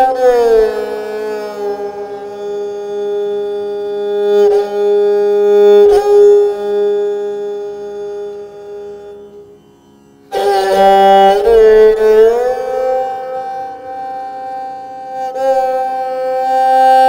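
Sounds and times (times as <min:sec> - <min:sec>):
bowed string instrument note: 0:00.0 - 0:16.6.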